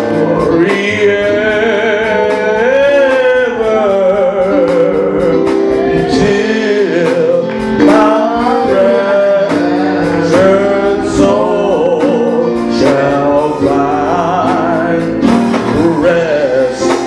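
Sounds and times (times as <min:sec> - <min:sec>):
instrumental backing chords: 0:00.0 - 0:17.0
person singing gospel: 0:00.0 - 0:17.0.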